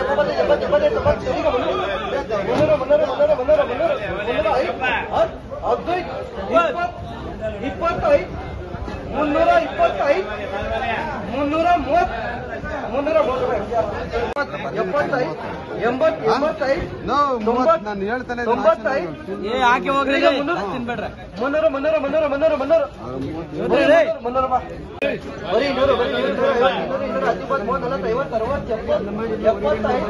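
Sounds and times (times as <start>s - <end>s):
men talking over one another: 0.0s - 30.0s.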